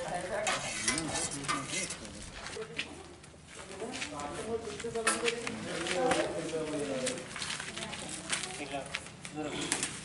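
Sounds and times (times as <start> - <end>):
ladles scraping steel pots: 0.5 - 2.1
metallic clatters: 0.5 - 2.2.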